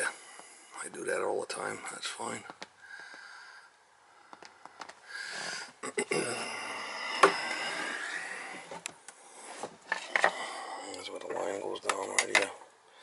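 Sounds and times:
sharp clicks and knocks: 0:11.8 - 0:12.6.

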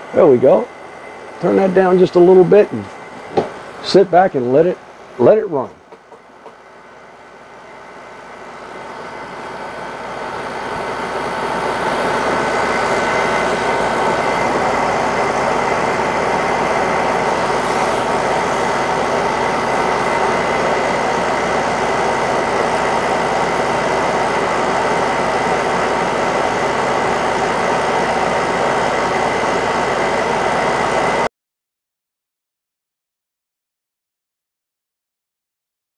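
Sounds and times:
chiller humming and whining: 0:00.0 - 0:31.3.

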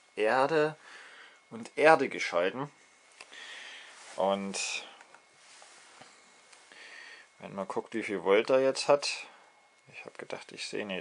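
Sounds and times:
short breath: 0:00.8 - 0:01.5, 0:03.2 - 0:04.1, 0:06.0 - 0:07.4.

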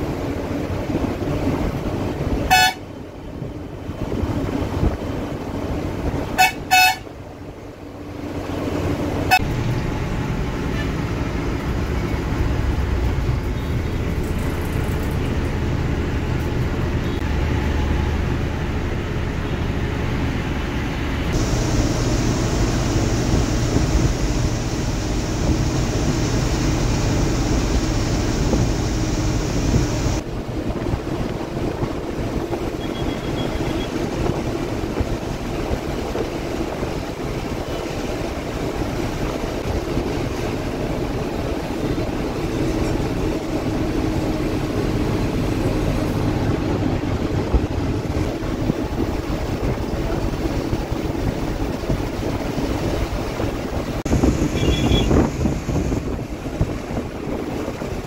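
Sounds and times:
bus engine drone: 0:00.0 - 0:58.0
road noise: 0:00.0 - 0:58.0
high hiss: 0:21.4 - 0:30.2.

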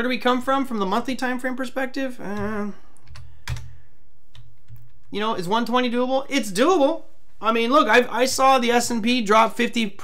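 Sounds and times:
computer keyboard keystrokes: 0:03.0 - 0:03.7.

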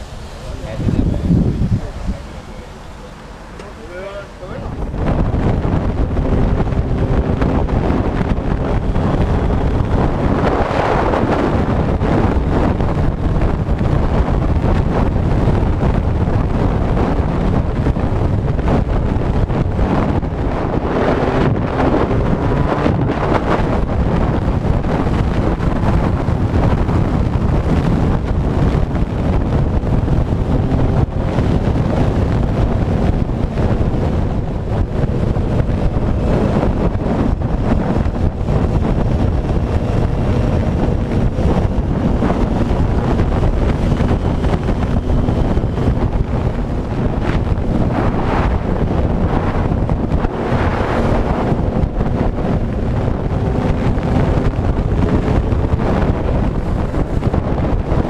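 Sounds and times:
wind noise on microphone: 0:00.0 - 0:58.0.

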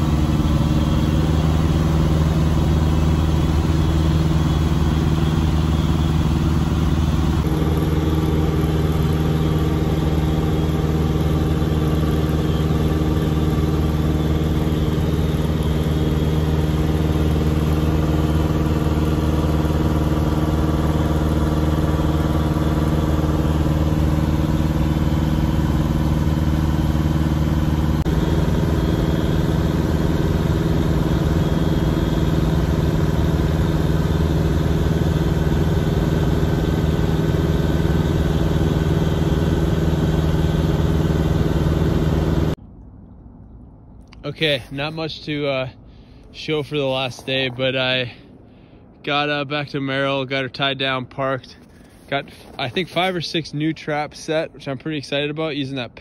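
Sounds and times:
aircraft engine drone in cabin: 0:00.0 - 0:56.0.

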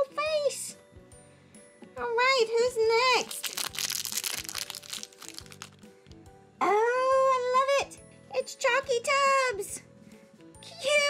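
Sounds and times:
background music: 0:00.0 - 0:11.0
foil wrapper crinkling: 0:03.2 - 0:05.9.

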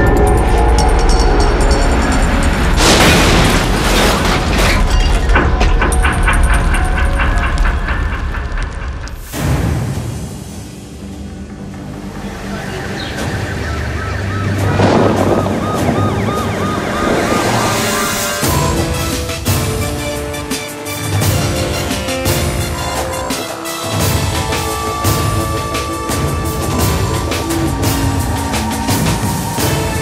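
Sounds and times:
tense film score: 0:00.0 - 0:30.0
car explosion boom: 0:02.8 - 0:04.9.

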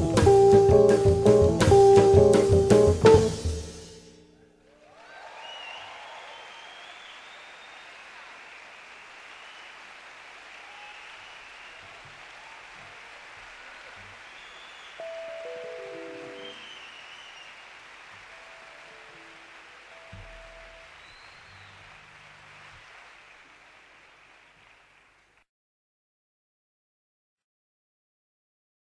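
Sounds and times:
quiet jazz trio music: 0:00.0 - 0:04.0.

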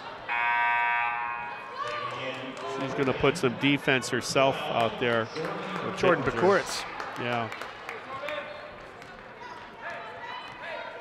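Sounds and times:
scoreboard horn buzzing: 0:00.3 - 0:01.6.

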